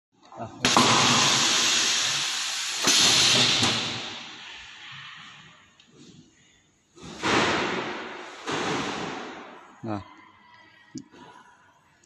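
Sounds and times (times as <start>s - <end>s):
pneumatic air hiss: 0.6s - 4.8s.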